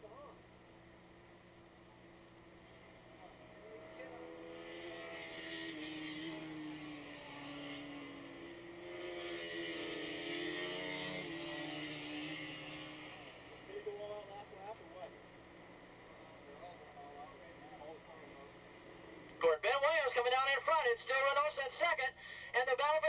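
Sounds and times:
distant racing motorcycles high revs: 2.1s - 19.4s.

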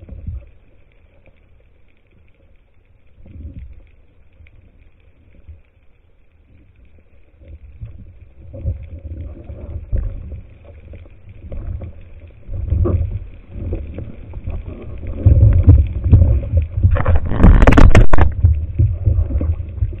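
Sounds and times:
water sloshing underwater: 0.0s - 20.0s.

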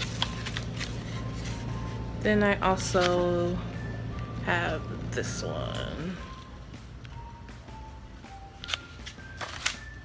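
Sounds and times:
plastic packaging clicks and rustles: 0.0s - 1.3s, 8.6s - 10.0s.

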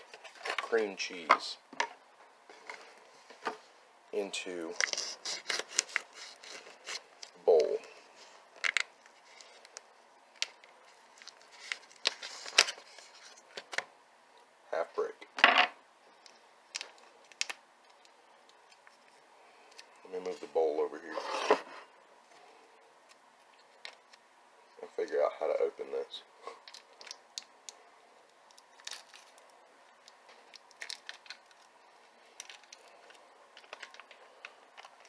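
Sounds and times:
foil wrapper crinkling and tearing: 4.8s - 7.7s, 8.6s - 13.6s, 16.7s - 18.1s, 28.5s - 31.7s, 32.3s - 34.2s.

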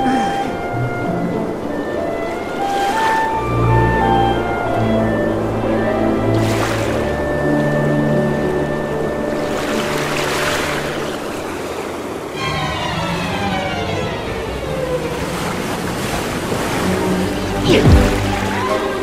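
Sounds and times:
background music: 0.0s - 11.0s, 16.8s - 19.0s
rushing water-like swell: 0.0s - 19.0s
falling swoop effect: 17.6s - 18.5s.

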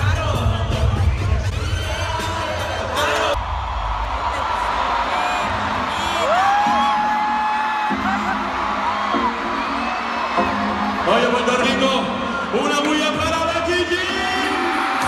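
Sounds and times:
live concert music: 0.0s - 15.0s.

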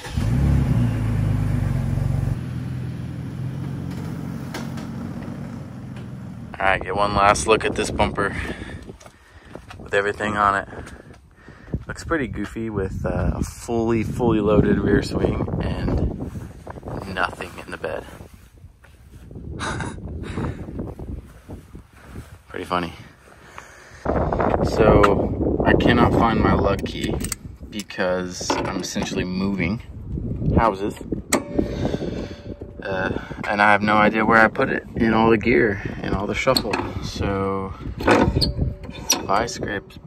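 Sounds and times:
pickup truck engine pulling away: 0.0s - 6.6s
wind rumbling on microphone: 3.8s - 40.0s
footsteps on concrete: 8.7s - 13.3s.

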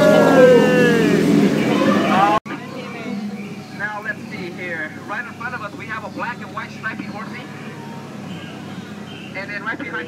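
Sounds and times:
passengers' voices and chatter: 0.0s - 8.6s.

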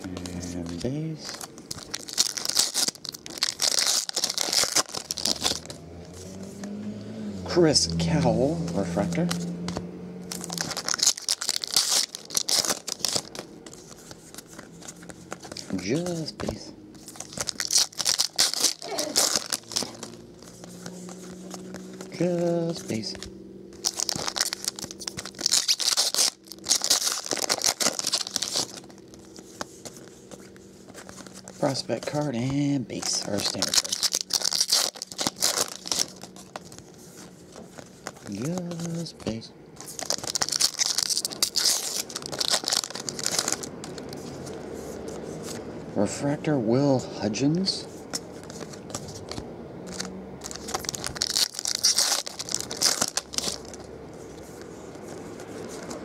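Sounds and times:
foil wrapper tearing and crinkling: 0.0s - 5.7s, 10.3s - 23.2s, 23.8s - 44.5s, 48.1s - 53.9s.

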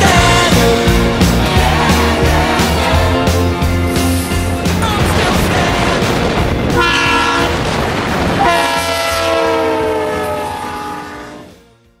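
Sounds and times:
train rumbling: 0.0s - 12.0s
locomotive air horn blasts: 6.8s - 7.7s, 8.4s - 11.7s.

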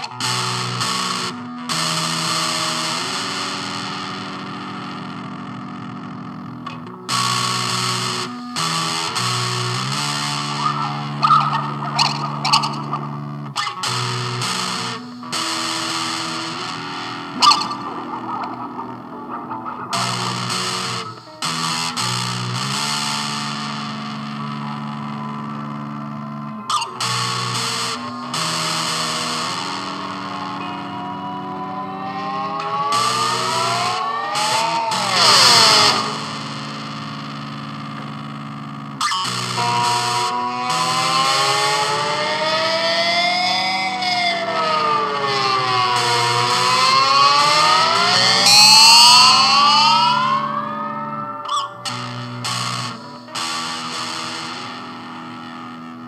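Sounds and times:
distorted electric guitar music: 0.0s - 56.0s.

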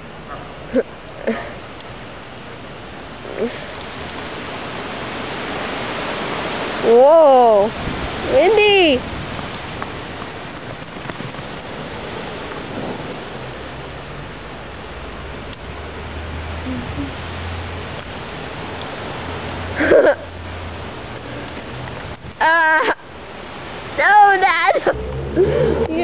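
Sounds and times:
wind hiss: 0.0s - 26.0s
short voice sounds: 16.6s - 17.2s.

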